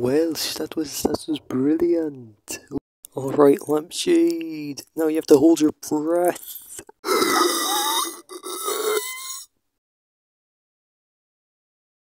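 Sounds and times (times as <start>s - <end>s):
person straining and grunting: 7.0s - 9.5s.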